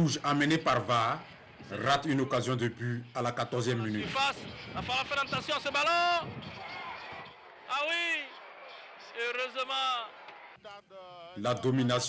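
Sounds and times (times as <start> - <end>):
man commentating: 0.0 - 6.4, 7.6 - 8.4, 9.1 - 12.0
stadium crowd noise: 0.0 - 12.0.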